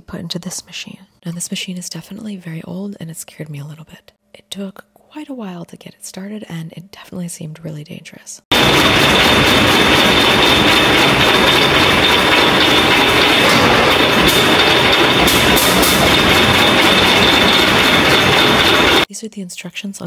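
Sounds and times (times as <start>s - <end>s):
grinding machine whine and clatter: 8.5s - 19.1s.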